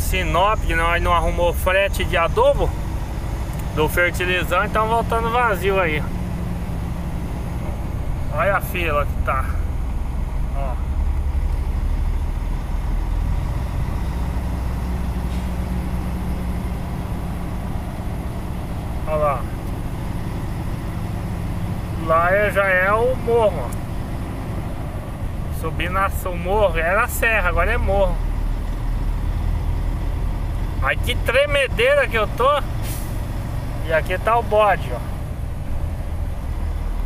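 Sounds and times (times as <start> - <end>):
diesel truck engine rumble: 0.0 - 37.0.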